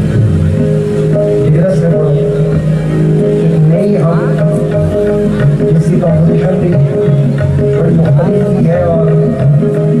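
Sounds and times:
harmonium held notes: 0.0s - 10.0s
man singing: 5.6s - 10.0s.

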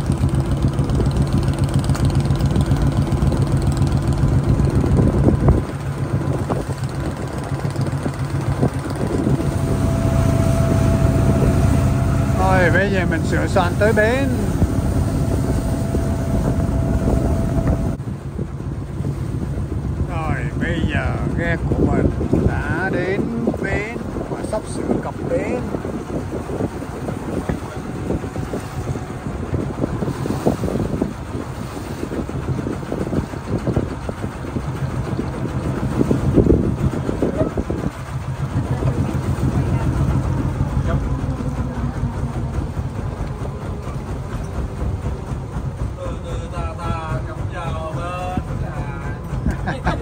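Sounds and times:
wind on microphone: 0.0s - 46.0s
boat engine droning: 0.0s - 50.0s.

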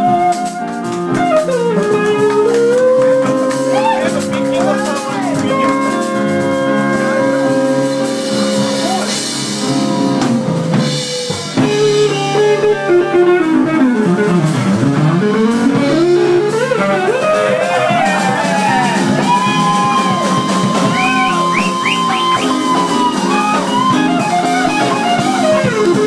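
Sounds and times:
drum kit: 0.0s - 26.0s
electric guitar lead bending notes: 0.0s - 26.0s
rhythm guitar: 0.0s - 26.0s.

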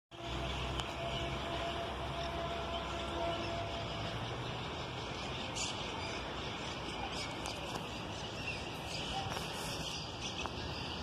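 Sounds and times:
distant diesel locomotive humming: 0.1s - 11.0s.

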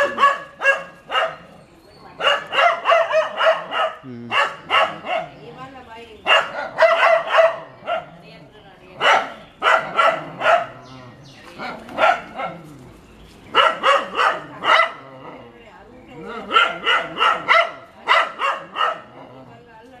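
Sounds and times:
dog barking: 0.0s - 1.6s, 2.2s - 5.5s, 6.2s - 8.1s, 9.0s - 10.9s, 11.6s - 12.7s, 13.5s - 15.1s, 16.3s - 19.2s.

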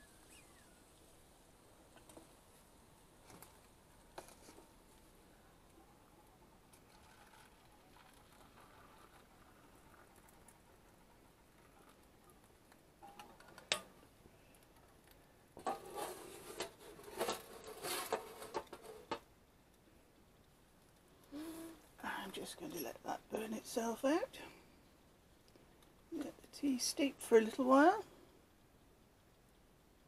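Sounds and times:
water pouring into paper cup: 6.7s - 12.1s.

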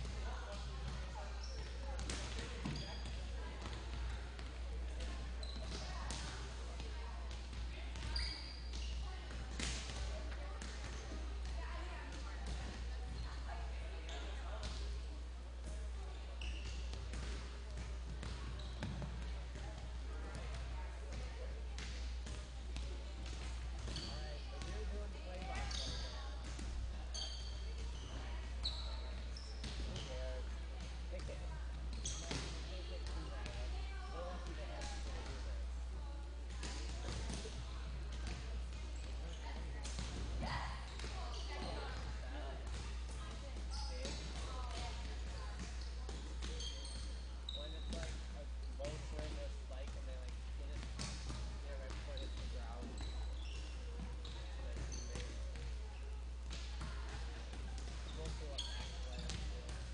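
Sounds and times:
volleyballs hit and bouncing: 0.0s - 35.7s, 36.4s - 59.9s
shoes squeaking: 1.2s - 6.5s, 8.0s - 10.1s, 16.4s - 19.3s, 25.6s - 32.7s, 43.7s - 49.6s, 50.9s - 59.6s.

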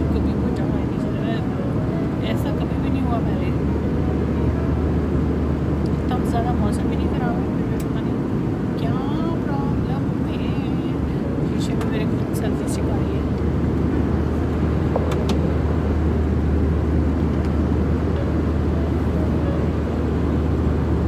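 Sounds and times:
aircraft cabin engine rumble: 0.0s - 21.0s
low hum: 0.0s - 21.0s.

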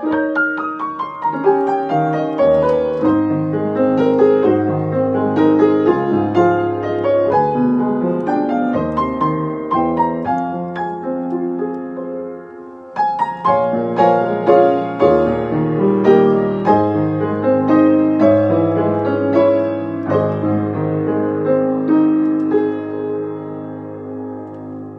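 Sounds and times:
solo grand piano: 0.0s - 24.9s.

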